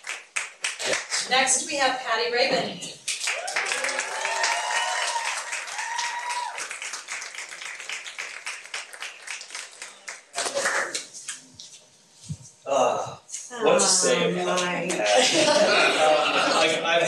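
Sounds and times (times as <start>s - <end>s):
audience applauding: 0.0s - 1.3s, 3.1s - 11.1s.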